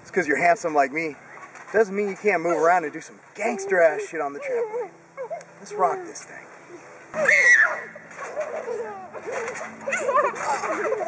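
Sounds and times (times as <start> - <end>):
children and man calling excitedly: 2.3 - 11.0.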